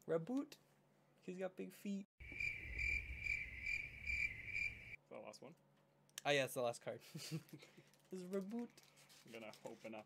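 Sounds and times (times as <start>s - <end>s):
cricket chirping: 2.2s - 5.0s.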